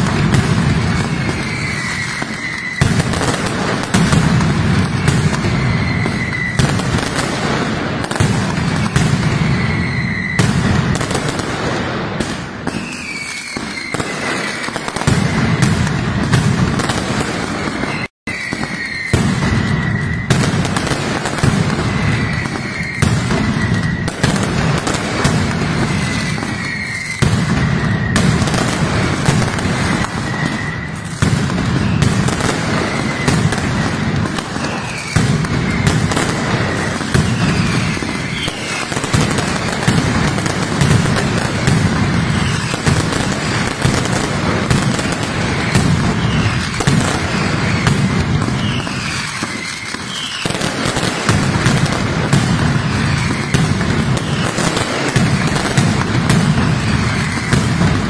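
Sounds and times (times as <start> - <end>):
firecracker barrage: 0.0 - 58.0
pyrotechnic whistles dropping in pitch: 0.6 - 7.3, 8.5 - 11.1, 12.6 - 44.2, 45.0 - 55.8, 56.6 - 58.0.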